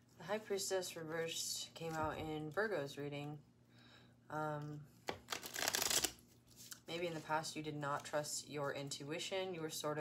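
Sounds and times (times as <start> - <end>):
cards being riffle-shuffled: 5.1 - 7.3
cards rustling: 5.1 - 7.3.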